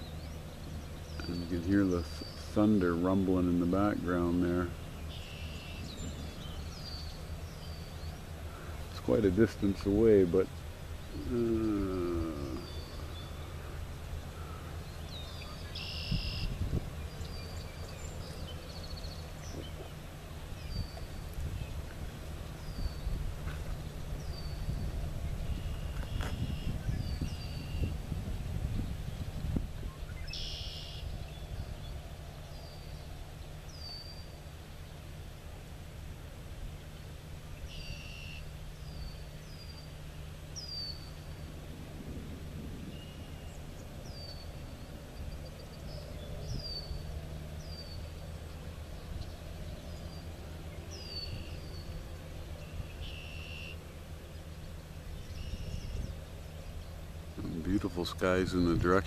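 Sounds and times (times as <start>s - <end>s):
raspy bird calls: 0.0s - 28.1s, 29.9s - 35.0s, 37.5s - 41.6s, 52.6s - 59.0s
bird chirping: 0.0s - 35.1s, 36.8s - 41.6s, 42.8s - 59.0s
low background rumble: 0.0s - 59.0s.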